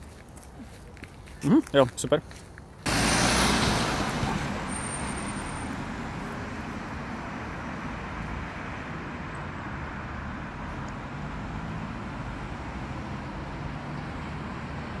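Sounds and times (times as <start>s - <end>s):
hum of passing cars: 0.0s - 15.0s
van passing close: 2.8s - 15.0s.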